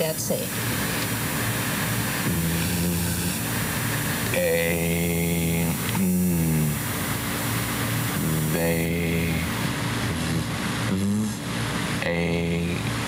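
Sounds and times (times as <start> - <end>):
tape hiss: 0.0 - 11.4
man sounding out a word: 2.2 - 3.3, 4.3 - 6.8, 8.2 - 11.4, 12.0 - 12.9.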